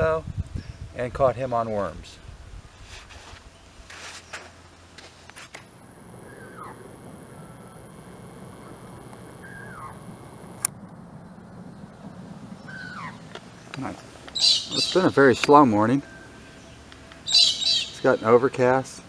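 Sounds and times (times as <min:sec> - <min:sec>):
bird calling: 0:06.0 - 0:10.4, 0:12.5 - 0:18.7.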